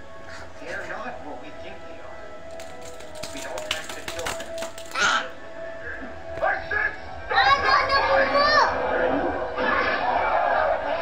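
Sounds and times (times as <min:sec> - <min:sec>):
film soundtrack music: 0:00.0 - 0:11.0
rapid clattering clicks: 0:02.5 - 0:05.0.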